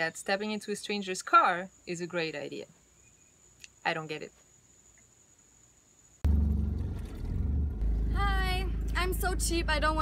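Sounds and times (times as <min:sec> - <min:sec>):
engine and road rumble: 0:06.2 - 0:10.0.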